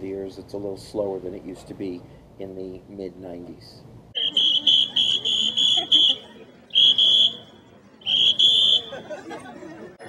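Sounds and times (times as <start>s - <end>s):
high-pitched whistle blasts: 4.2s - 9.0s.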